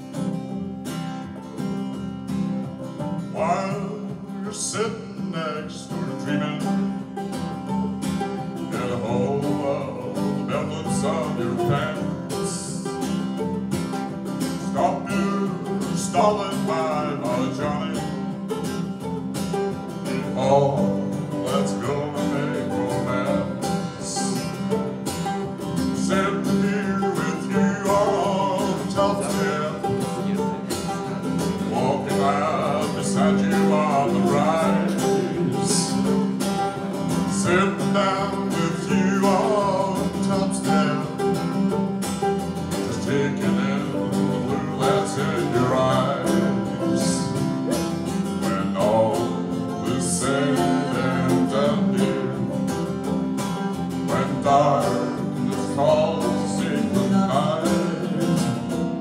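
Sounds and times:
mandolin playing: 0:00.0 - 0:59.0
strummed acoustic guitar: 0:00.0 - 0:59.0
man singing: 0:03.3 - 0:07.8, 0:08.6 - 0:13.6, 0:14.4 - 0:19.1, 0:20.0 - 0:59.0.

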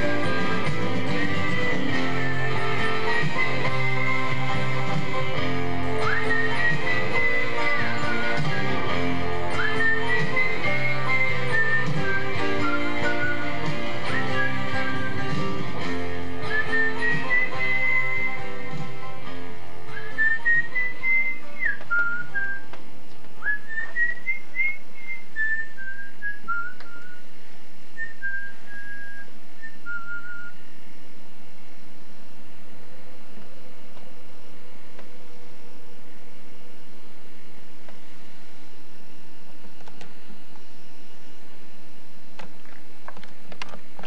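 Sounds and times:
guitar music: 0:00.0 - 0:24.1
faint hum and hiss: 0:00.0 - 0:44.0
person whistling a tune: 0:01.2 - 0:04.4, 0:05.9 - 0:15.6, 0:16.4 - 0:18.6, 0:19.9 - 0:22.7, 0:23.4 - 0:27.3, 0:28.0 - 0:30.7.

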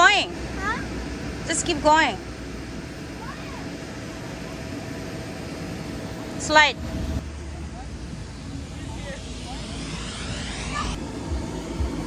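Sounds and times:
electric air blower drone: 0:00.0 - 0:12.0.

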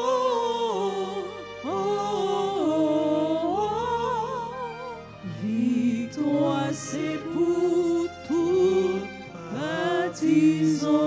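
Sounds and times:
person humming a hymn melody: 0:00.0 - 0:11.0
soft steady accompaniment: 0:00.0 - 0:11.0.

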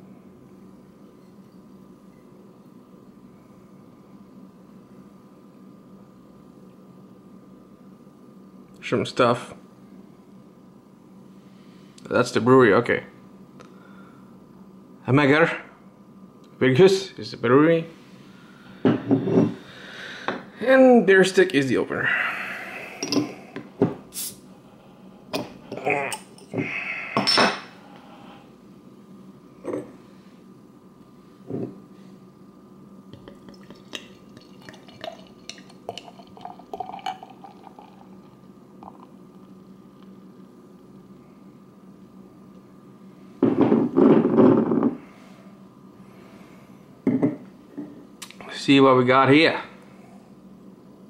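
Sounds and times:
beer pouring into glass: 0:33.1 - 0:40.1.

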